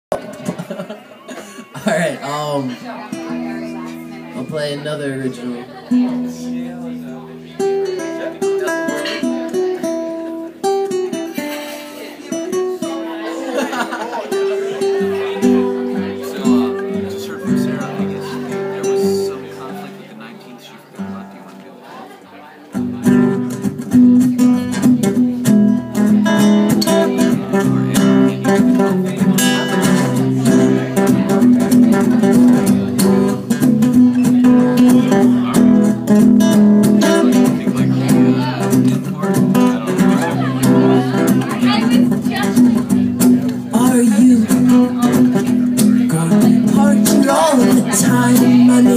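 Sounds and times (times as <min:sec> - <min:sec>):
nylon-string acoustic guitar: 0:00.1 - 0:48.9.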